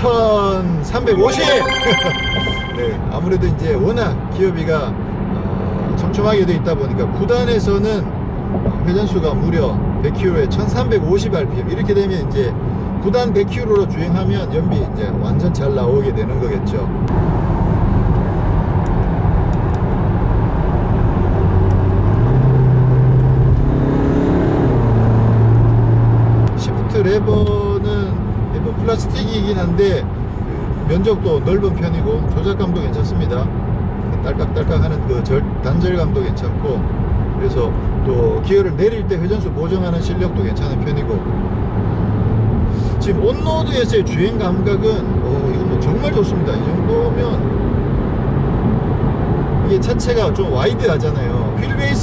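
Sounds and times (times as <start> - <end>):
man's voice: 0.9 - 3.2
car cabin road and engine rumble: 3.4 - 52.0
car engine revving: 17.1 - 26.5.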